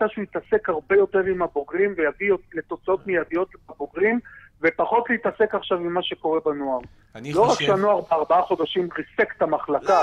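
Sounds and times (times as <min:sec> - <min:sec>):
person talking: 0:07.2 - 0:10.0.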